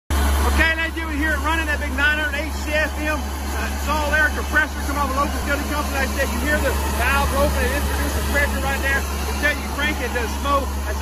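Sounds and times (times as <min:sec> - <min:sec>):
diesel engine low drone: 0:00.1 - 0:11.0
man talking: 0:00.4 - 0:11.0.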